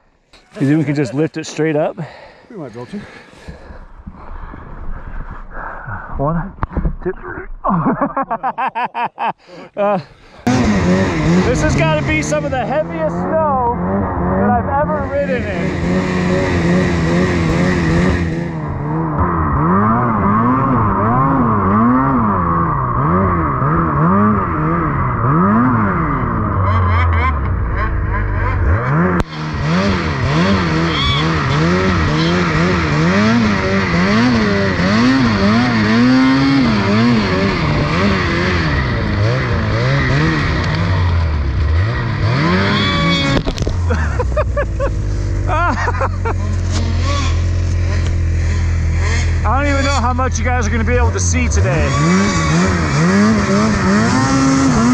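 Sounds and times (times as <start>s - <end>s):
snowmobile engine revving: 0.4s - 3.5s, 6.3s - 54.9s.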